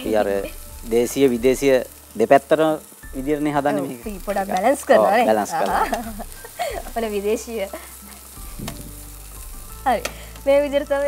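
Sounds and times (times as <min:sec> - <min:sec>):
food sizzling in a frying pan: 0:00.0 - 0:11.0
light knock: 0:08.6 - 0:09.0.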